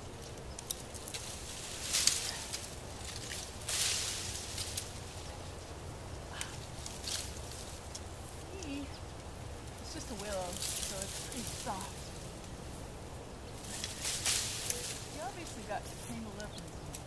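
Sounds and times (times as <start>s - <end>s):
brush and vines rustling: 0.0s - 17.0s.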